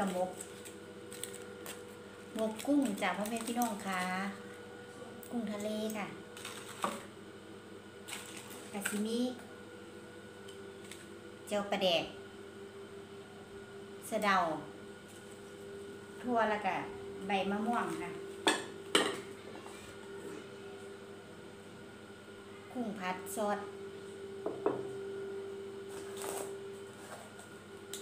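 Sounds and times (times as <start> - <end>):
foil wrapper crinkling: 0.0 - 4.2, 8.1 - 9.0.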